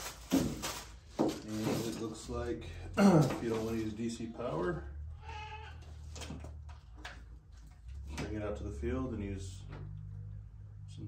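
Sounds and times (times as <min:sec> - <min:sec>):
goat bleating: 0:05.1 - 0:06.0.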